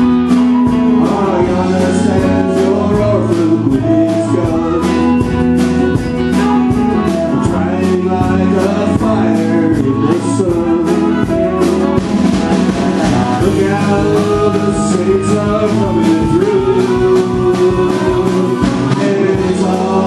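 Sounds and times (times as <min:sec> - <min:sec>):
drum kit beat: 0:00.0 - 0:20.0
electric guitar: 0:00.0 - 0:20.0
harmonica: 0:00.0 - 0:20.0
man singing: 0:00.0 - 0:20.0.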